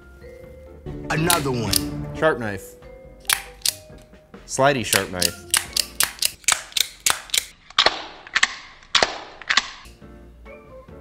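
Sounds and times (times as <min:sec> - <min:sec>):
knife blade snapping clicks: 0:03.3 - 0:03.8, 0:04.9 - 0:07.5.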